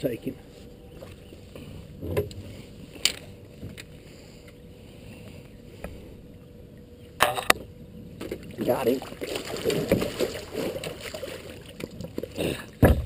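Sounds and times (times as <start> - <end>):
fish splashing: 8.2 - 12.2.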